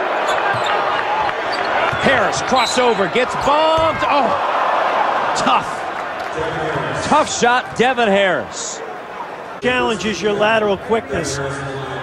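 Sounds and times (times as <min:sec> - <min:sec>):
arena crowd noise: 0:00.0 - 0:12.0
basketball bouncing on hardwood: 0:03.7 - 0:04.1.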